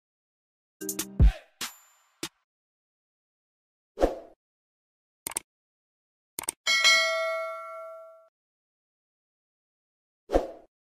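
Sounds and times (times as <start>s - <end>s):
bell-like ding: 6.7s - 8.3s.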